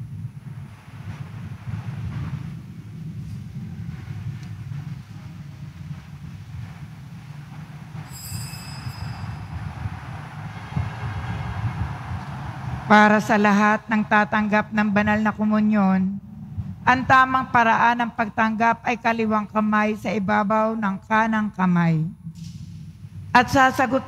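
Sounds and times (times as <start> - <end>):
low rumbling background noise: 0.0 - 24.0.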